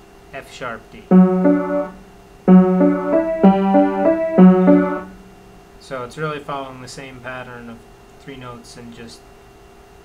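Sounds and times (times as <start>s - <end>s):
piano playing repeating notes: 1.1s - 5.4s.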